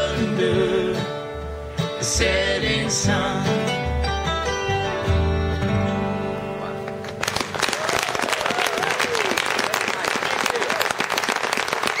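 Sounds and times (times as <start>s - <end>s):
audience clapping: 7.0s - 12.0s
audience whooping: 7.3s - 12.0s.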